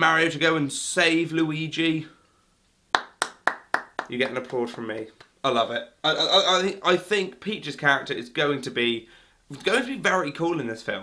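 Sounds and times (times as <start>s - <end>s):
person clapping hands: 2.9s - 5.4s.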